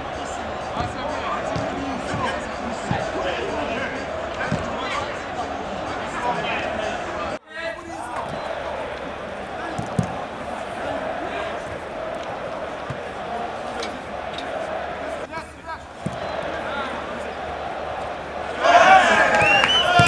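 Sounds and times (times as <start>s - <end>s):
players calling and shouting: 0.0s - 20.0s
football thuds: 0.8s - 3.2s, 4.4s - 4.8s, 8.0s - 15.2s, 15.9s - 18.7s.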